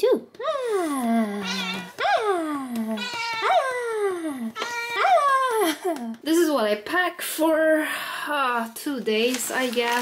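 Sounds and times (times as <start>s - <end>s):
cat meowing: 1.4s - 2.2s, 3.0s - 3.6s, 4.6s - 5.4s.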